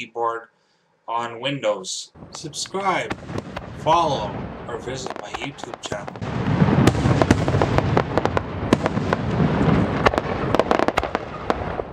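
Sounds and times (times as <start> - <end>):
low rumble: 2.1 - 10.5
fireworks popping: 2.2 - 11.9.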